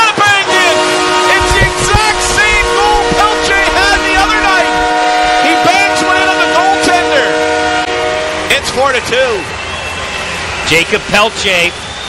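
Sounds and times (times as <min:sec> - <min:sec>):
voices: 0:00.0 - 0:07.4
goal horn chord: 0:00.3 - 0:08.7.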